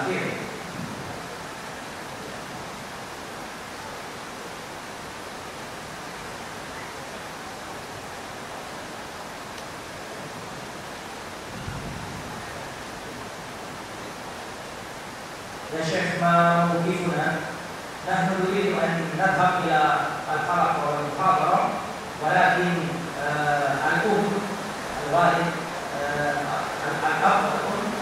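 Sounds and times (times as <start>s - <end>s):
room and sound system hiss: 0.0s - 28.0s.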